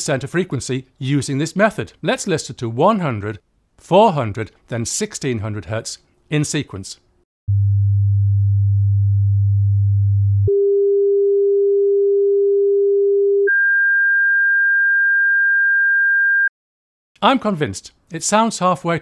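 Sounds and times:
sine wave test tones: 7.5 - 16.5.

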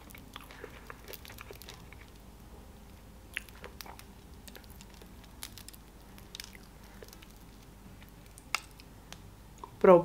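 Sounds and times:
small crackles: 0.0 - 2.3, 2.9 - 9.8
sticky squishes: 0.0 - 2.3, 3.3 - 9.9.

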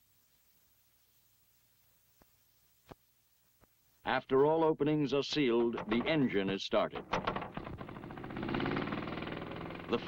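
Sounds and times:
small blower engine starting up: 7.2 - 10.0.

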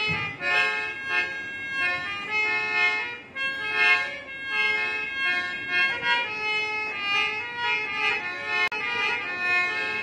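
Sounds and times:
harmonium melody: 0.0 - 10.0.

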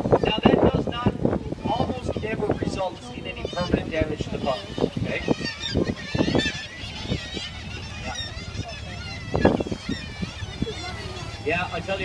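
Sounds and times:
seabirds calling: 0.0 - 12.0.

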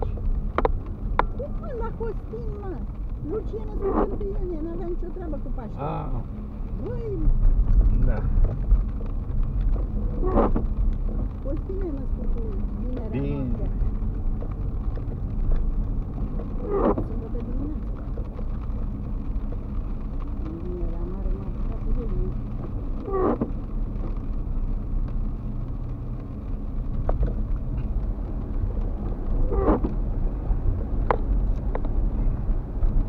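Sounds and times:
car driving on wet street: 0.0 - 33.0.

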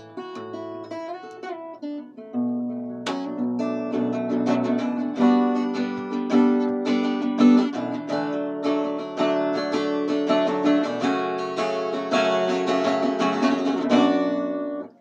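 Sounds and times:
acoustic guitar strummed and picked: 0.0 - 15.0.

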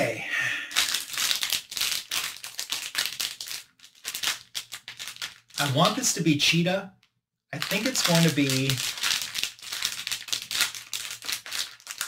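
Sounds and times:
foil bag crinkling: 0.8 - 6.0, 7.6 - 12.0.

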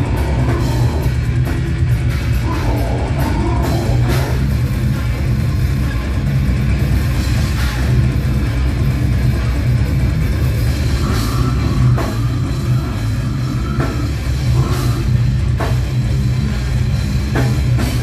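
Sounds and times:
death metal band playing live: 0.0 - 18.0.

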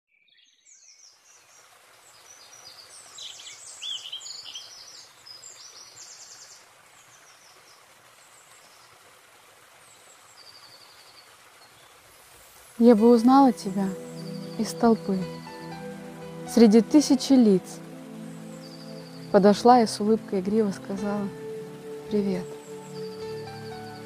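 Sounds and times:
songbirds chirping and trilling: 0.1 - 24.0
faint outdoor hiss: 0.2 - 24.0.

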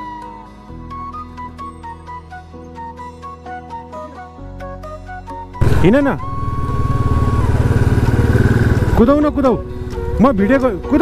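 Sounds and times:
motorcycle engine thumping: 5.6 - 9.1.

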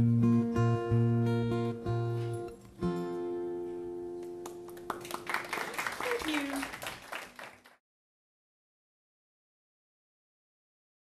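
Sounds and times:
acoustic guitar chord ringing: 0.0 - 4.4
audience clapping: 4.2 - 7.8.

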